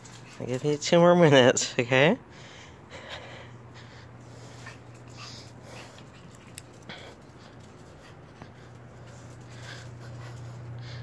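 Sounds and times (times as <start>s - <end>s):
steady low hum: 0.0s - 11.0s
puppy sniffing and snuffling: 3.8s - 11.0s.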